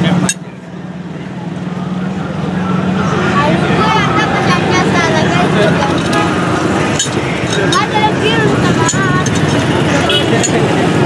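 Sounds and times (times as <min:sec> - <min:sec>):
faint street noise: 0:00.0 - 0:11.0.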